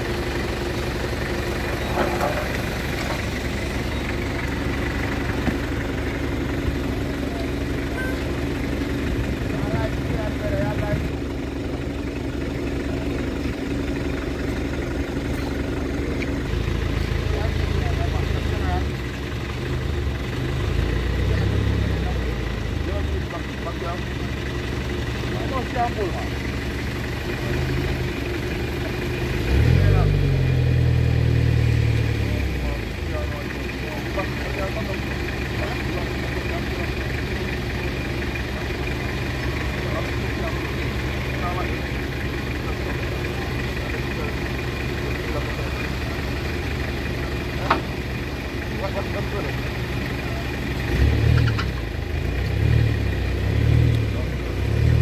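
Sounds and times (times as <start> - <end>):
vehicle engine idling: 0.0 - 55.0
people talking indistinctly: 3.6 - 51.7.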